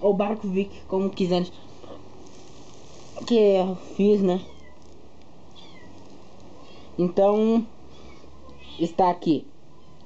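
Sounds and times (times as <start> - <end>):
low background hiss: 0.0 - 10.0
faint animal calls: 4.4 - 7.0, 7.9 - 9.0.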